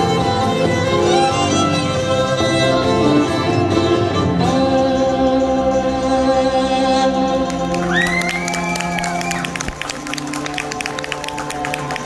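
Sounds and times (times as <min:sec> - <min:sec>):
violin over backing track: 0:00.0 - 0:12.0
audience clapping: 0:07.5 - 0:12.0.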